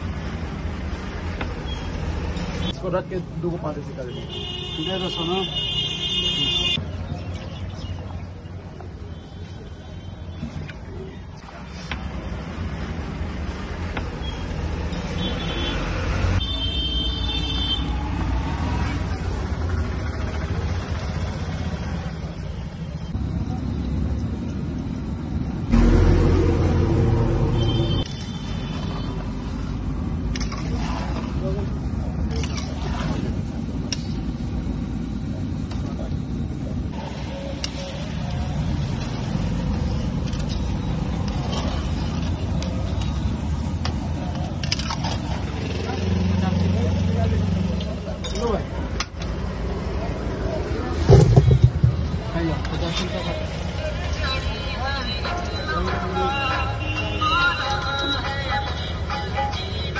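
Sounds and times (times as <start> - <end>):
street traffic: 0.0 - 59.9
loud low vehicle sound: 17.8 - 55.4.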